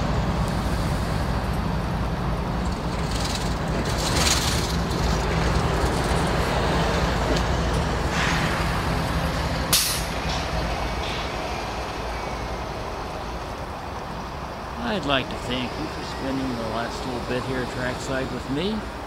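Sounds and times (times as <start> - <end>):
locomotive engine drone: 0.0 - 19.0
air hissing: 6.5 - 14.1
sharp burst of air: 8.0 - 11.9.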